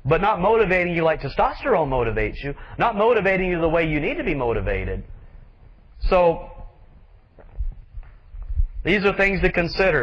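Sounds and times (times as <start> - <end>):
man speaking: 0.0 - 5.1, 6.0 - 6.8, 8.8 - 10.0
soft low thumps: 3.4 - 9.5.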